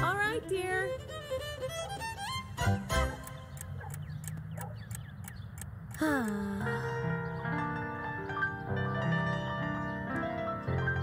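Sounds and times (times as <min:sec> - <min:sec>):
small birds chirping: 0:03.0 - 0:07.8.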